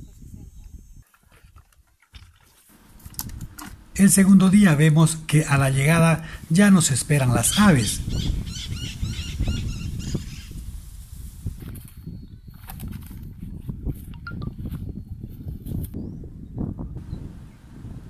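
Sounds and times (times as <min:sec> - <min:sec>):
wind rumble on microphone: 0:00.0 - 0:01.6, 0:02.9 - 0:04.2, 0:06.3 - 0:18.0
birds chirping: 0:02.7 - 0:10.6.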